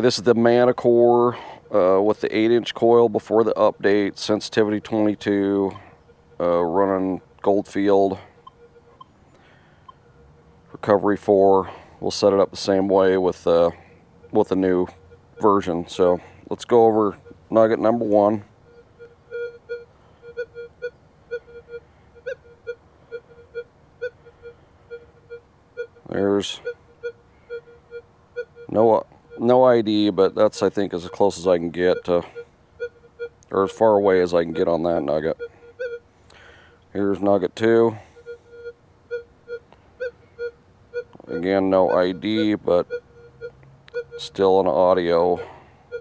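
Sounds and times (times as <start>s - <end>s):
metal detector beeping: 0.0s - 46.0s.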